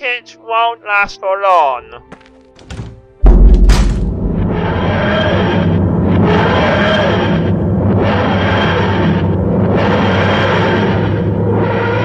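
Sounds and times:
loud deep thud: 2.6 - 4.7
dense soundtrack effect: 3.2 - 12.0.

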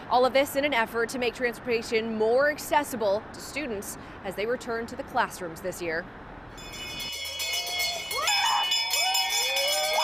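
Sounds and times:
handbell ringing: 6.6 - 10.0.

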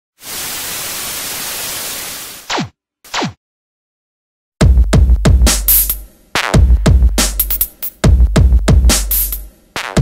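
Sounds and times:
television static hiss: 0.2 - 2.3.

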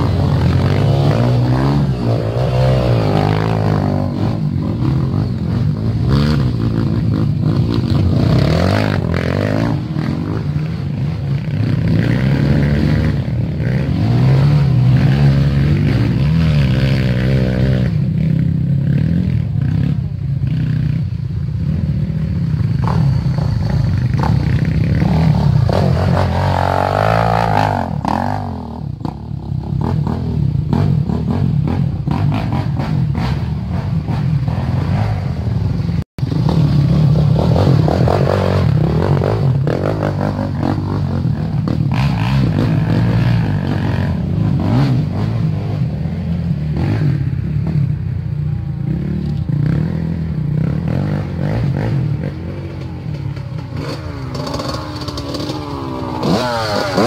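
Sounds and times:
dirt bike engine revving: 0.0 - 20.9, 21.6 - 57.0
dirt bike engines running: 0.0 - 57.0.

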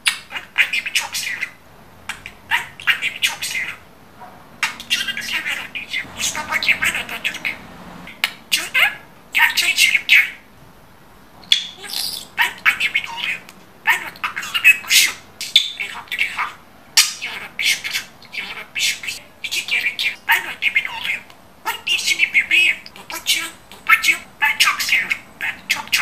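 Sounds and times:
budgerigar chattering and squawking: 0.0 - 3.8, 4.6 - 10.4, 11.5 - 26.0.

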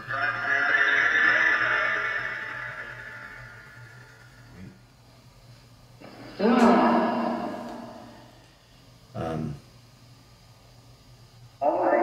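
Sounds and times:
garbled voice-like sound with echo: 6.3 - 8.3.

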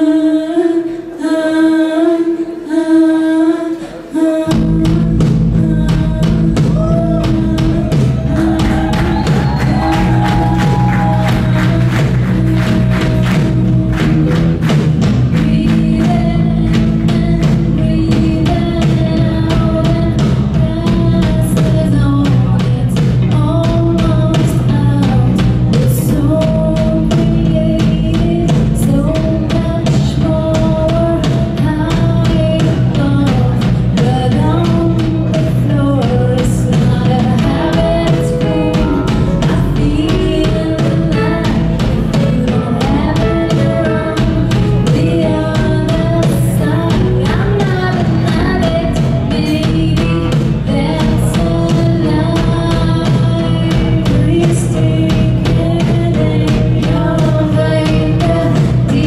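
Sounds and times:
woman singing lead: 0.0 - 59.0
bass guitar: 4.4 - 59.0
drum kit beat: 4.5 - 59.0
electric guitars: 30.9 - 59.0.

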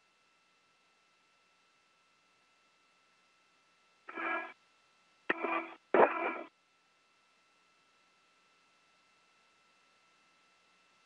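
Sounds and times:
faint steady hum: 0.0 - 11.0
radio click: 4.1 - 4.5, 5.3 - 6.5
buzzy radio tones: 4.1 - 4.6, 5.3 - 6.5.

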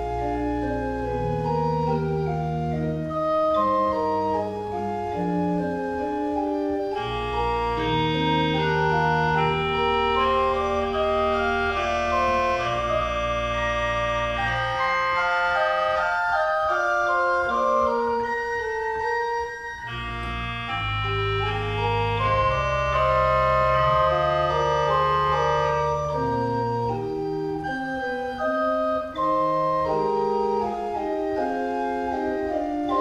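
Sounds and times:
church organ playing hymn: 0.0 - 33.0.

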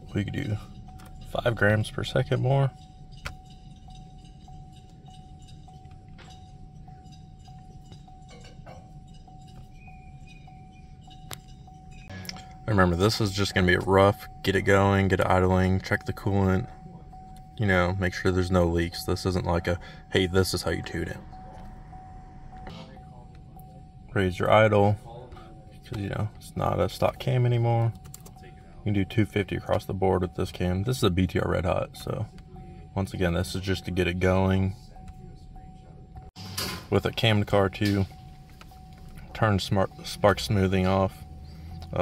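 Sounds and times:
faint pulsing tone: 0.0 - 42.0
low hum: 0.0 - 42.0.

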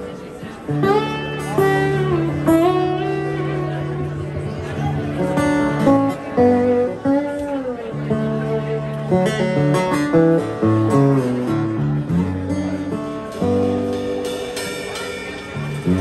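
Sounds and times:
slide guitar melody: 0.0 - 16.0
electric bass line: 15.6 - 16.0.

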